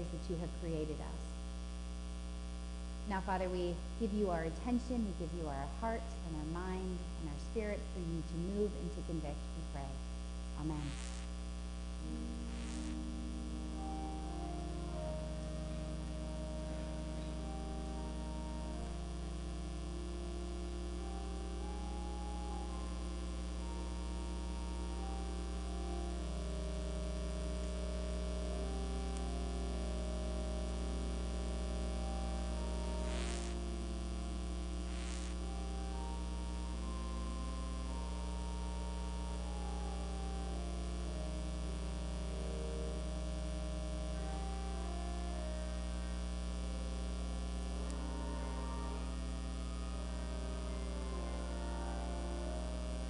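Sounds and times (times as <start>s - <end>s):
electrical mains hum: 0.0s - 53.0s
faint held tones: 7.0s - 53.0s.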